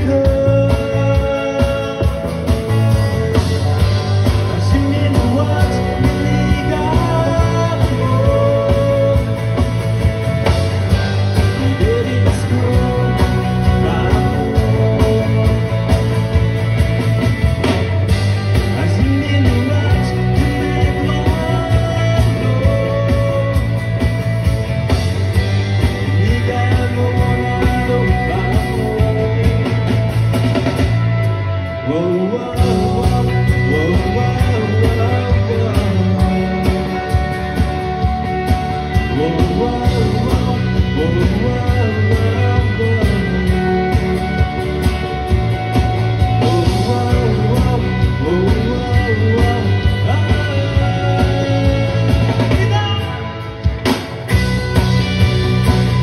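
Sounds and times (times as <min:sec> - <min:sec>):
drum kit beat: 0:00.0 - 0:31.3, 0:32.6 - 0:56.0
acoustic guitar: 0:00.0 - 0:56.0
bass line: 0:00.0 - 0:56.0
electric guitar: 0:00.0 - 0:56.0
rock band playing: 0:00.0 - 0:56.0
bending guitar notes: 0:00.3 - 0:56.0.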